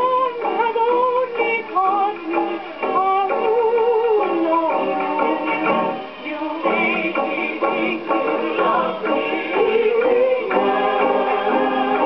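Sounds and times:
instrumental accompaniment: 0.0 - 12.0
person singing on old record: 0.0 - 12.0.

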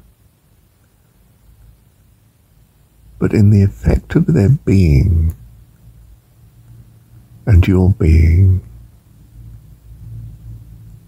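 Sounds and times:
faint low rumble: 0.0 - 11.0
steady low hum: 0.0 - 11.0.

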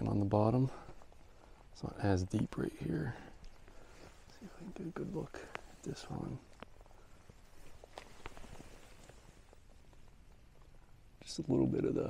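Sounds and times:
low background hush: 0.0 - 12.0
faint soft clicks and knocks: 0.7 - 11.3.

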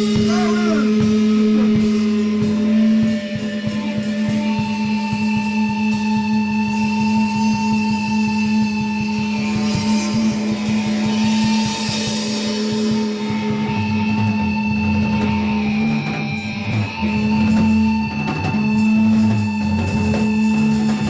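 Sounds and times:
cymbal wash: 0.0 - 21.0
rock band playing live: 0.0 - 21.0.

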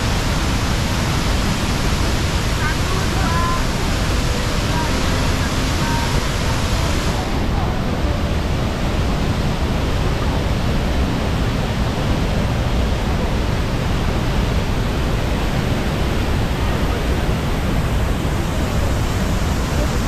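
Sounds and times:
waterfall rushing: 0.0 - 20.0.

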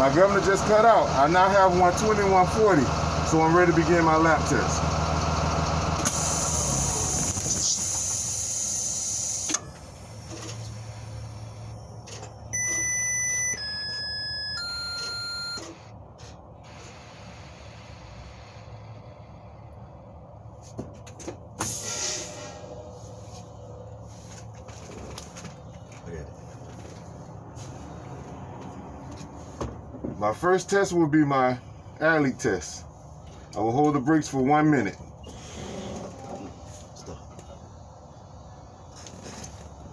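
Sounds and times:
engine rumble: 0.0 - 39.9
air brake hiss: 6.0 - 9.5, 16.6 - 19.1, 21.6 - 23.5, 35.2 - 35.8
dashboard chime tones: 12.6 - 15.6.

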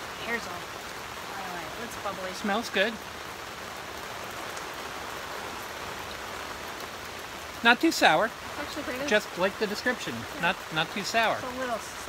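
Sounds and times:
rain on tent canopy: 0.0 - 12.0.

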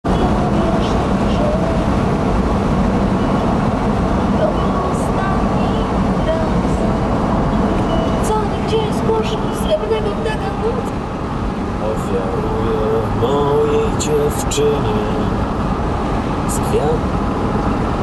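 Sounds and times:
road and wind noise: 0.0 - 18.0.

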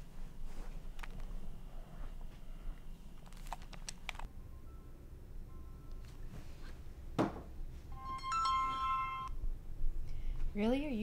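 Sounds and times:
mobile phone ringtone: 7.9 - 9.3.

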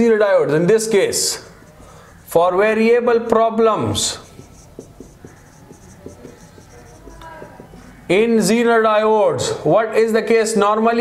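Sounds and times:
marker squeak: 0.8 - 8.5
marker scratching on whiteboard: 0.8 - 8.6.

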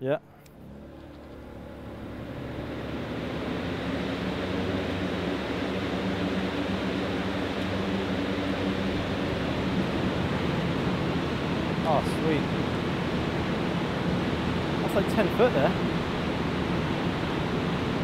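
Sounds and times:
electric fans whooshing: 0.0 - 18.0.

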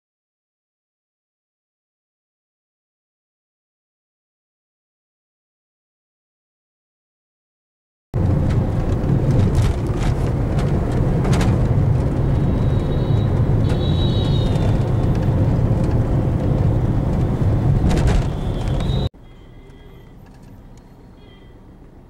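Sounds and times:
car engine and road noise: 8.2 - 22.0
faint high-pitched tones: 19.2 - 21.7.

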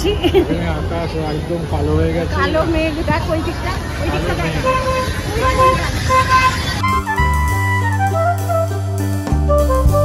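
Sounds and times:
crowd chatter: 0.0 - 10.0
traffic noise: 0.0 - 10.0
vehicle horn beeps: 4.1 - 7.3.

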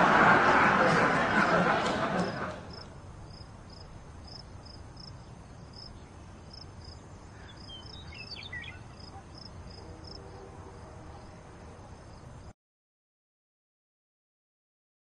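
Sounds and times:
crickets chirping: 1.1 - 12.5.

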